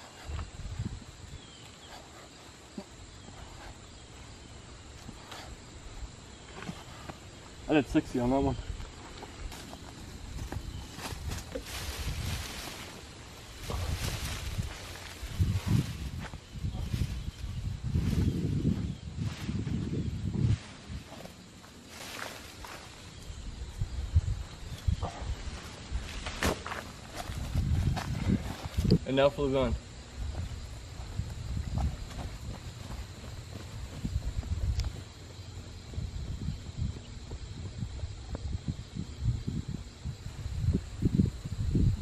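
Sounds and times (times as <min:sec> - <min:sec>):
rustling on grass and leaves: 0:00.0 - 0:35.2
high insect drone: 0:00.0 - 0:42.0
low rumble on microphone: 0:10.2 - 0:21.2, 0:29.7 - 0:42.0.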